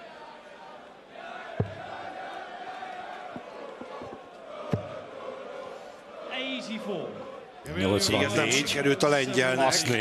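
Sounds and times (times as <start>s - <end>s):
crowd chanting: 0.0s - 10.0s.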